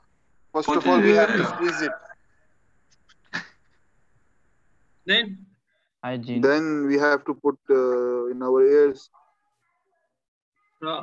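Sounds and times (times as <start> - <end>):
faint high hum: 0.6 - 2.2.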